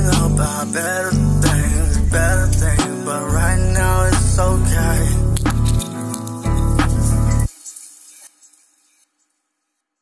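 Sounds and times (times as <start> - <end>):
music with heavy bass and drums: 0.0 - 7.5.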